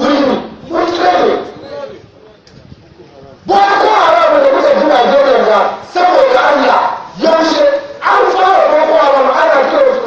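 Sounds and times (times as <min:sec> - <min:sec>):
man shouting into a microphone: 0:00.0 - 0:02.0, 0:03.4 - 0:10.0.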